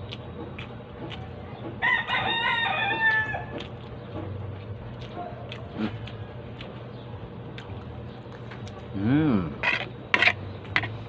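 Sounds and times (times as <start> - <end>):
rooster crowing: 1.8 - 3.5.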